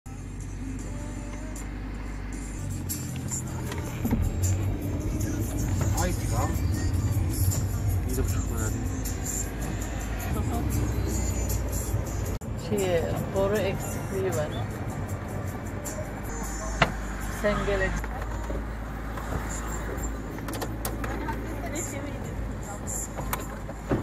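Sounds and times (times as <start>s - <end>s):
car engine and road rumble: 0.1s - 24.0s.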